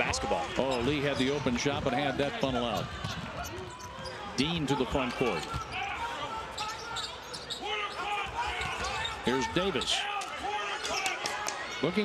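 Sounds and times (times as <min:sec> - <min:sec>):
sneakers squeaking: 0:00.5 - 0:10.0.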